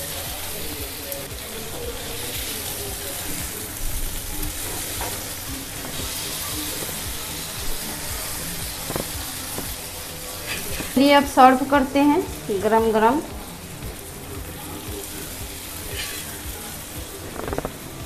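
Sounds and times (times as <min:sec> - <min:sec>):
food sizzling in oil: 0:00.0 - 0:18.0
metal spatula scraping pan: 0:10.3 - 0:11.1.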